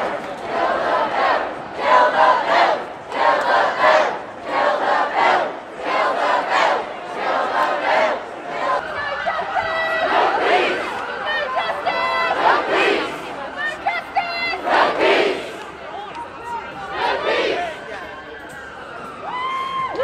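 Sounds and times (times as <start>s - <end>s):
crowd chanting slogan: 0.0s - 17.9s.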